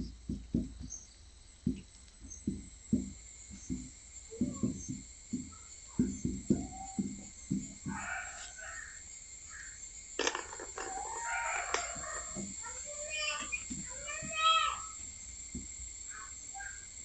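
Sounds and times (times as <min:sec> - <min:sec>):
birds calling: 0:00.0 - 0:17.0
marker knocking on whiteboard: 0:01.7 - 0:08.1.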